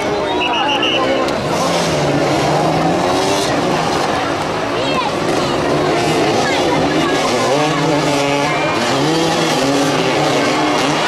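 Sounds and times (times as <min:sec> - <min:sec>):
motorcycles revving: 0:00.0 - 0:11.0.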